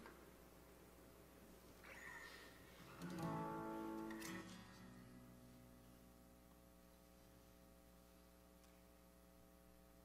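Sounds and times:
acoustic guitar chord strummed: 2.9s - 5.9s.

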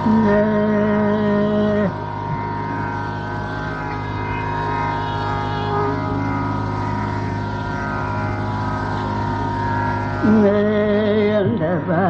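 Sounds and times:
tanpura drone: 0.0s - 12.0s.

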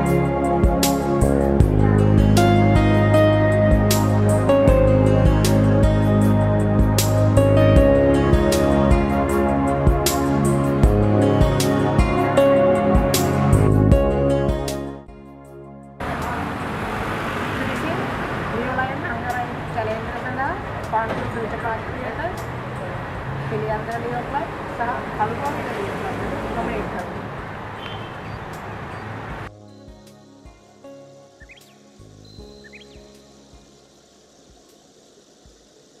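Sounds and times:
soft music with slow beat: 0.0s - 16.0s, 29.5s - 34.8s
road traffic noise: 0.0s - 36.0s.

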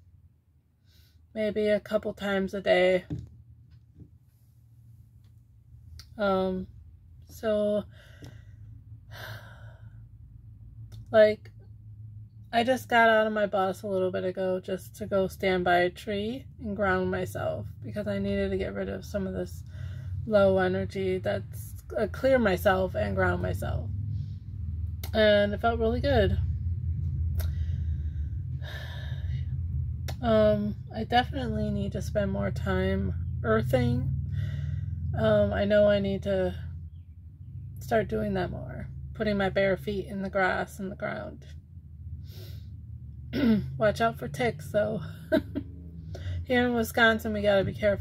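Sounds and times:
steady low hum: 0.0s - 48.0s
woman breathing in: 7.9s - 10.1s, 34.3s - 35.0s.

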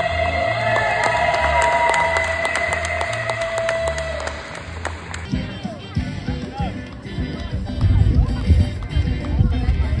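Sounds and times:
audience clapping: 0.7s - 5.3s
low pulsing bass: 5.3s - 10.0s.

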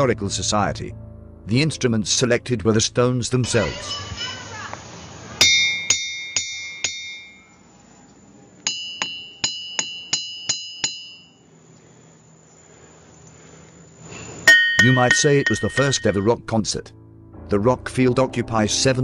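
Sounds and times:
hammer striking ringing rocks: 5.4s - 7.5s, 8.7s - 11.4s, 14.5s - 16.4s.

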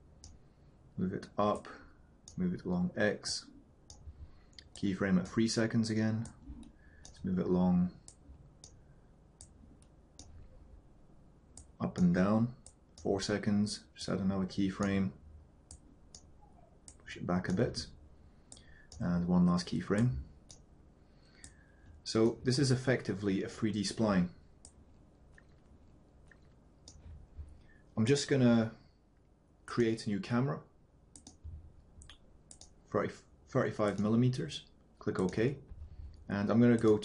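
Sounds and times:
faint room hiss: 0.0s - 37.0s
computer mouse clicking: 6.2s - 7.2s, 9.4s - 10.5s, 21.3s - 22.4s, 24.6s - 27.1s, 31.1s - 31.4s, 32.0s - 32.8s, 33.8s - 34.1s, 35.2s - 37.0s.

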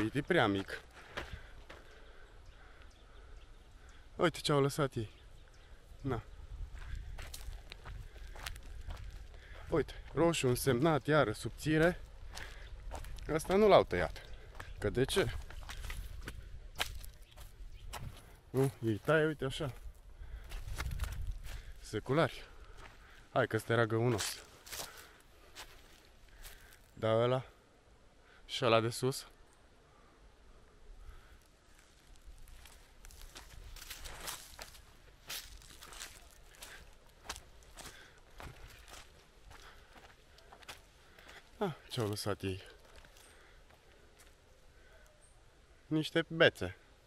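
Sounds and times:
faint footsteps on forest floor: 0.0s - 4.2s, 4.8s - 27.6s, 30.9s - 45.6s
faint crackles: 31.0s - 45.0s.

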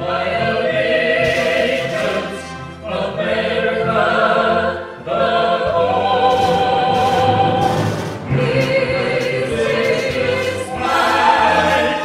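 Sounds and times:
orchestra accompanying: 0.0s - 12.0s
singers in harmony: 0.0s - 12.0s.

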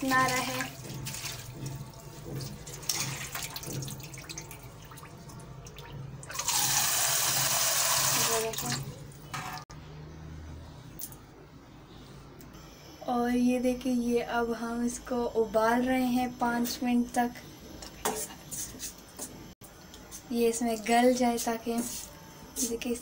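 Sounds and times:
water splashing and sloshing: 0.0s - 6.6s.

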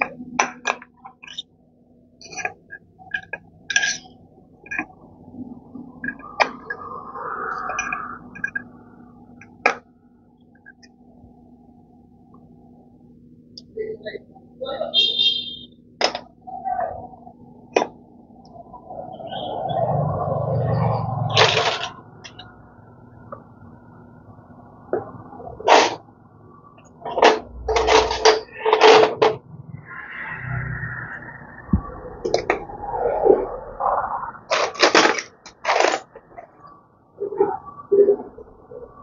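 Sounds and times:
metal tools clinking: 0.0s - 1.4s, 2.2s - 4.9s, 7.7s - 8.7s.

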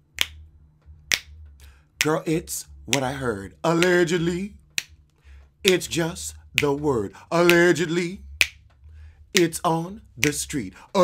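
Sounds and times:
finger snaps: 0.0s - 6.8s, 7.4s - 8.8s, 9.4s - 10.6s.

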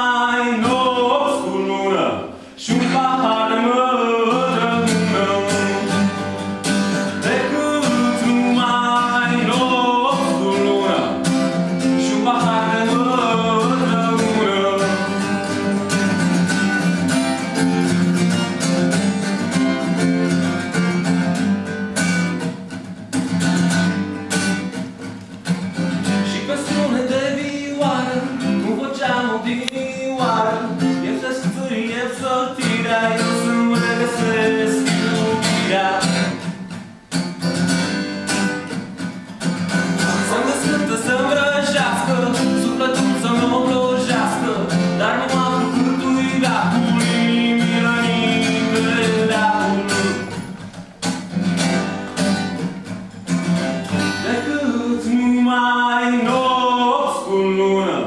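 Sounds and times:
man singing: 0.0s - 17.6s, 25.9s - 36.8s, 39.8s - 50.6s, 53.8s - 58.0s
guitar strumming chords: 0.0s - 58.0s.

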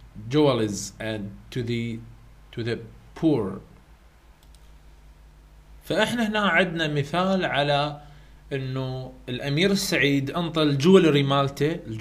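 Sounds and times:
low steady hum: 0.0s - 12.0s
man speaking: 0.2s - 3.7s, 5.8s - 12.0s
faint clicks: 3.8s - 4.8s.

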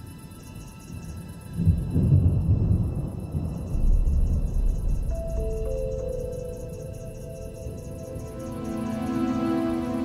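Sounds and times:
sustained high electronic tones: 4.8s - 10.0s.

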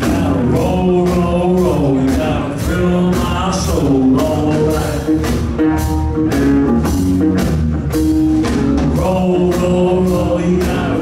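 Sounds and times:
bass guitar: 0.0s - 11.0s
electric guitar: 0.0s - 11.0s
steady drum beat: 0.0s - 11.0s.

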